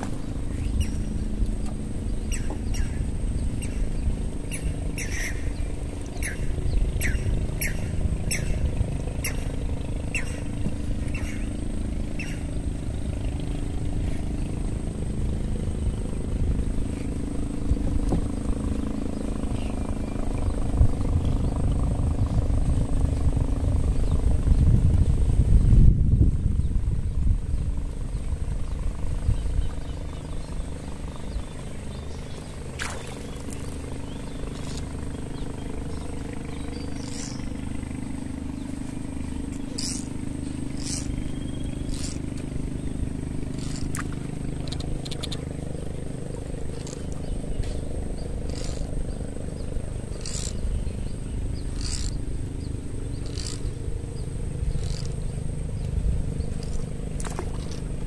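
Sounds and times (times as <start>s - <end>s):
boat engine droning: 0.0s - 58.0s
bird chirping: 40.8s - 43.9s.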